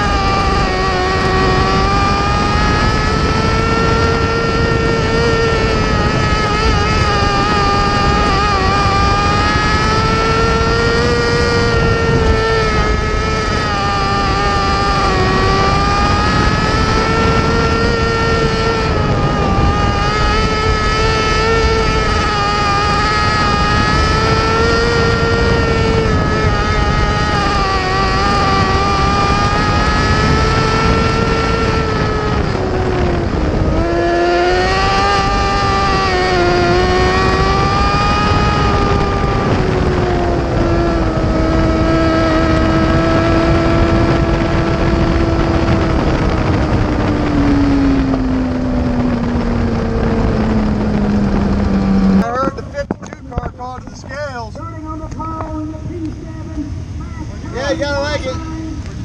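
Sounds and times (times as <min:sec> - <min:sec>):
race car engine revving: 0:00.0 - 0:59.0.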